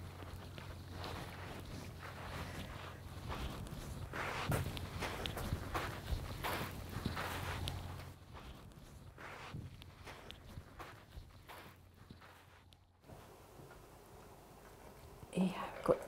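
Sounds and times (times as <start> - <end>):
steady low rumble: 0.0 - 12.3
footsteps crunching on shingle: 0.0 - 13.0.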